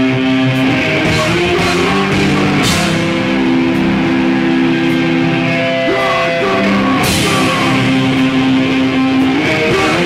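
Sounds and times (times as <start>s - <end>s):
doom metal band playing: 0.0s - 10.0s.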